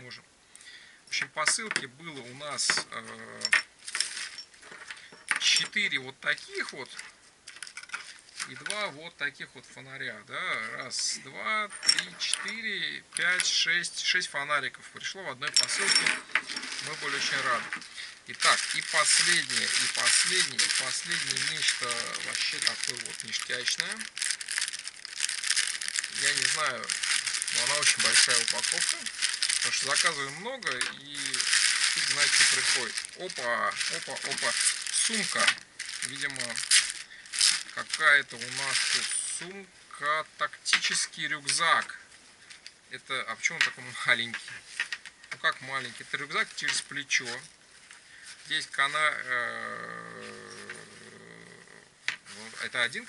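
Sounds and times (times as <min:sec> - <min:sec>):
plastic mailer bag crinkling: 0:03.2 - 0:05.9, 0:06.5 - 0:08.9, 0:15.6 - 0:39.5, 0:44.2 - 0:47.5.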